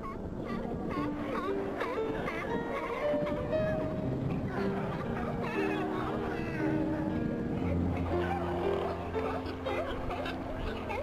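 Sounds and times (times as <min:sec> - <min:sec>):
background music: 0:00.0 - 0:11.0
sea lions barking: 0:00.0 - 0:11.0.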